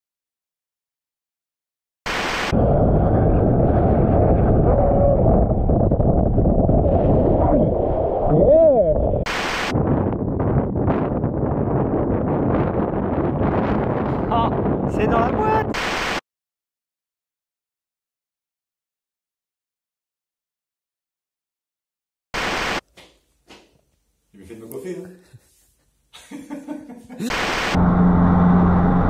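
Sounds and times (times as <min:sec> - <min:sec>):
wind buffeting microphone: 0:02.6 - 0:15.7.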